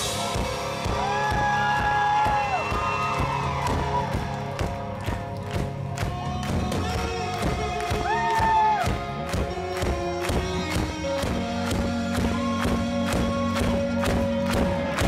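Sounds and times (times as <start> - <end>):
rock band playing live: 0.0 - 15.0
steady drum beat: 0.0 - 15.0
electric guitar bending notes: 4.6 - 15.0.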